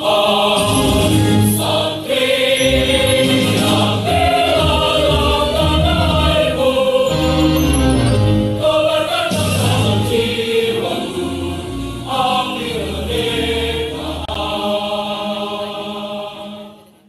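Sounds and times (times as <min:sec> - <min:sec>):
choir singing sustained notes: 0:00.0 - 0:17.0.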